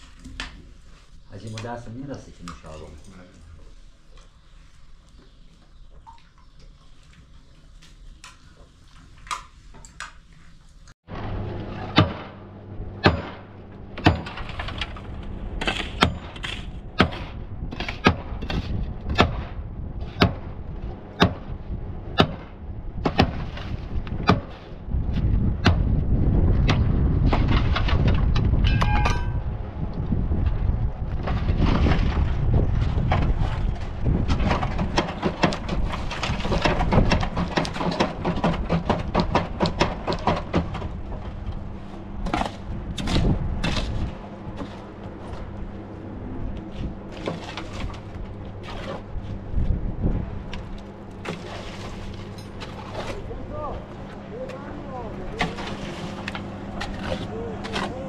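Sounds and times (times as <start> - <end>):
heavy low rumble: 11.1 - 58.0
metallic knocks on steel formwork: 11.7 - 12.4, 13.0 - 14.9, 28.0 - 29.5.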